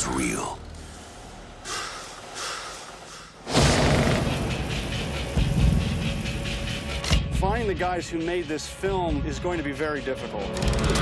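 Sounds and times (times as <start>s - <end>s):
deep rumbling bed: 1.8s - 6.8s.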